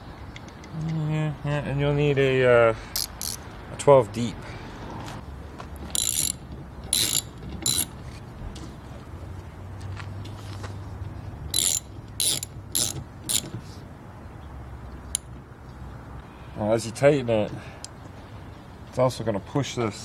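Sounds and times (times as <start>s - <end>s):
ratchet pawl clicking: 6.0s - 7.9s, 11.5s - 13.5s.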